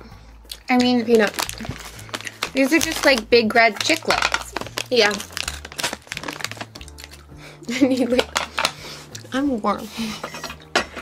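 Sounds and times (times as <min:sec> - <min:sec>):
plastic bag crinkling: 0:00.7 - 0:08.8.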